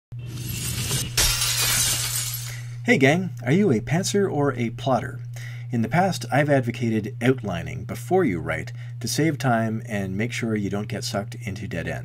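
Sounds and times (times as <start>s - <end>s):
low hum: 0.1s - 10.2s
glass shattering effect: 0.2s - 2.7s.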